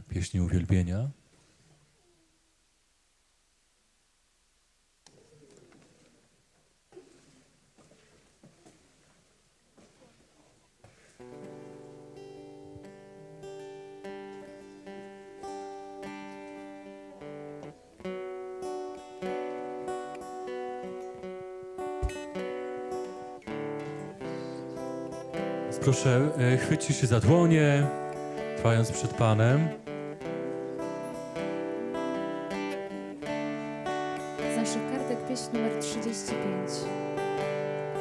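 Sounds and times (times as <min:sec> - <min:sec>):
rustling: 0:05.0 - 0:13.0
guitar strumming chords: 0:11.2 - 0:38.0.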